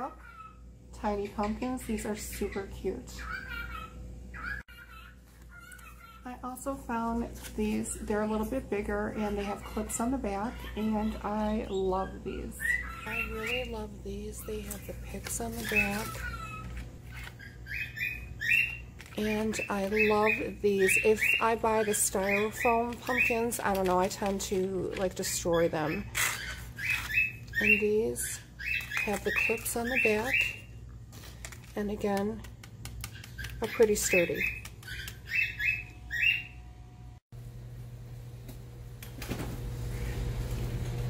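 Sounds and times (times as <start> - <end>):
bird chirping: 15.5 - 23.5, 33.1 - 36.7.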